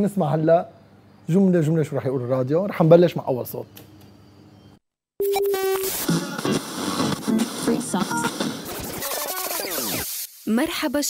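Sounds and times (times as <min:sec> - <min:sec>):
radio music and voices: 0:05.9 - 0:11.0.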